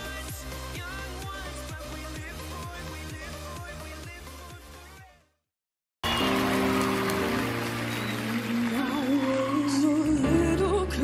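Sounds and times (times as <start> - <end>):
live band playing chords: 6.0 - 9.2
audience noise: 6.0 - 10.3.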